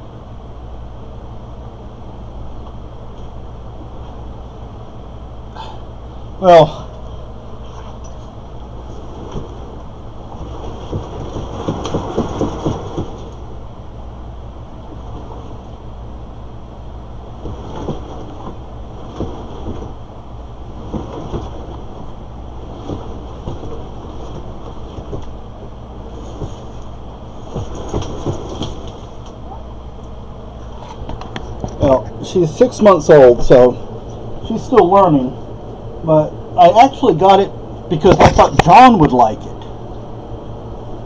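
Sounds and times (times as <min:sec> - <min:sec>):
cat exercise wheel rumbling: 0:06.4 - 0:35.4.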